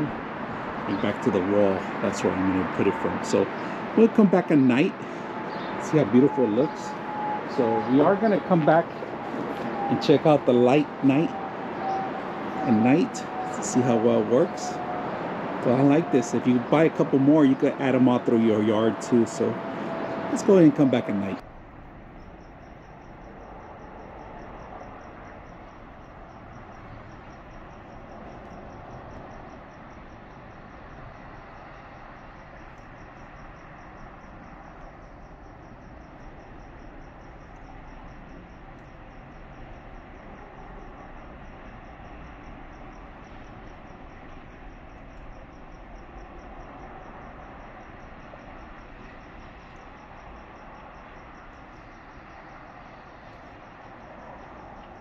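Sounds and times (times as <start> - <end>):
cricket chirping: 0.0 - 55.0.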